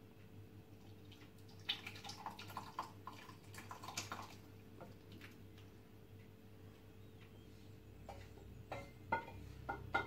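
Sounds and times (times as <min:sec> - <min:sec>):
wooden spoon knocking on saucepan: 0:08.1 - 0:10.0.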